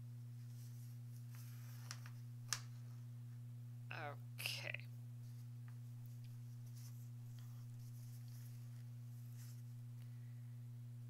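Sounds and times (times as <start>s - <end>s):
steady low hum: 0.0s - 11.0s
thread rustling through fabric: 5.2s - 9.8s.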